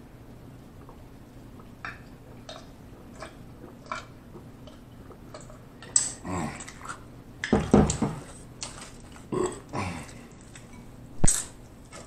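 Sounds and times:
man burping: 9.3 - 10.2.

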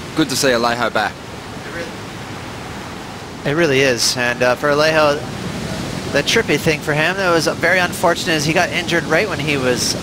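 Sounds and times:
ocean surf rushing: 0.0 - 10.0.

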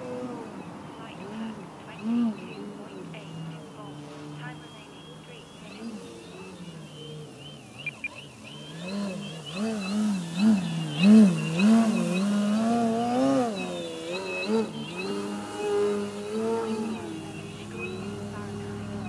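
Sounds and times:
model plane motor and propeller: 0.0 - 19.0.

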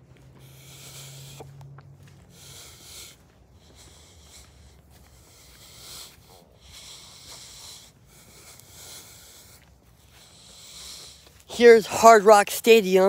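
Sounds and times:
person breathing: 0.0 - 12.3.

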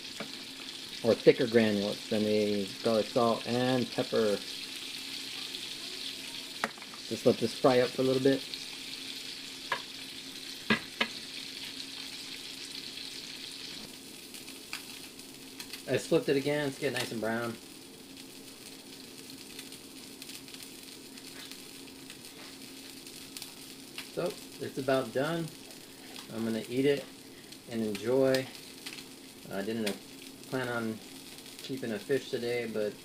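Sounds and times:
fish sizzling in a frying pan: 0.0 - 33.0.

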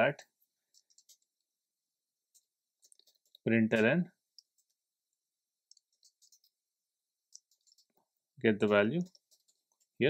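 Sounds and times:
computer keyboard keystrokes: 0.7 - 1.3, 2.3 - 4.7, 5.7 - 6.6, 7.3 - 8.0, 8.6 - 10.0.

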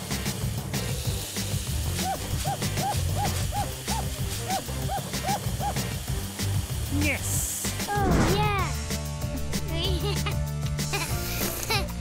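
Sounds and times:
background music with low beat: 0.0 - 12.0.

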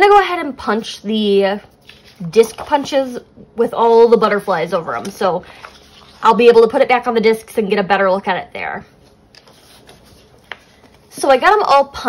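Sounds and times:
paper pages handled: 1.7 - 2.9, 4.9 - 6.2, 9.0 - 11.4.

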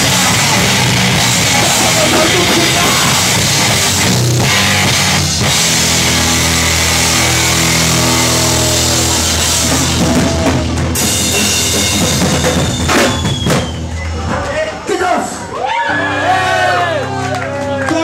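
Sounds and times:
distorted guitars and bass: 0.0 - 13.4
pounding drum kit: 0.0 - 14.0.

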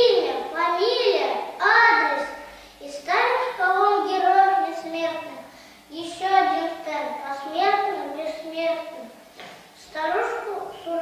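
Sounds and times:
boy reciting verse: 0.0 - 9.2, 9.8 - 11.0.

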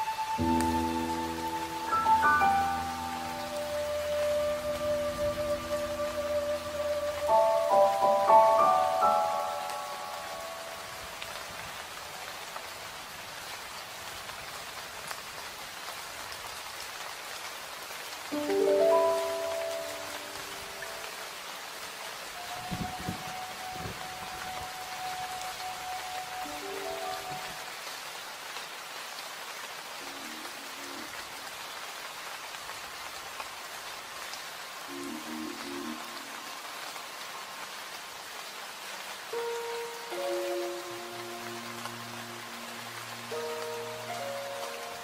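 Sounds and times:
soft sparse music: 0.0 - 12.8, 18.3 - 27.9, 34.8 - 45.0
steady rain hiss: 0.0 - 45.0.

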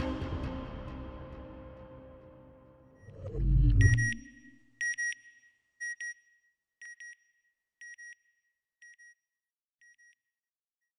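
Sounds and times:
paired electronic beeps: 3.0 - 6.2.

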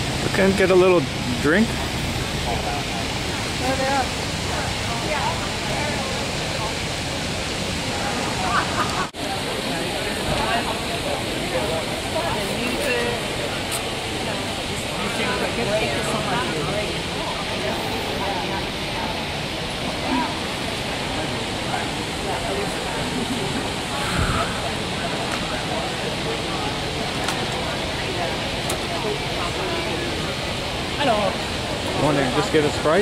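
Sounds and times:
chatter of many people: 0.0 - 33.0
fountain water rushing: 0.0 - 33.0.

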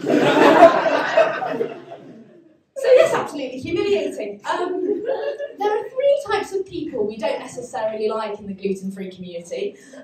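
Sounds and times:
audience laughter: 0.0 - 3.2, 4.8 - 5.7
woman speaking: 2.8 - 9.9.

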